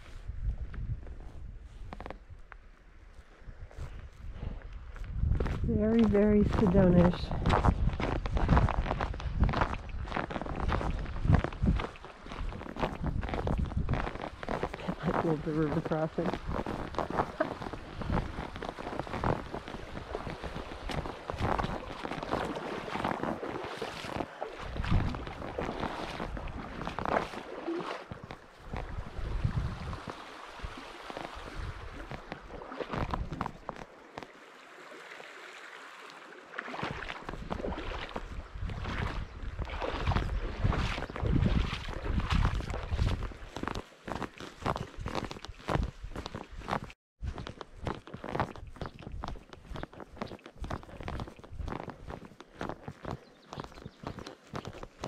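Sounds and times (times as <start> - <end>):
footsteps on dirt trail: 0.0 - 34.3, 36.9 - 55.0
boots splashing through river: 1.5 - 55.0
running water: 14.4 - 45.4.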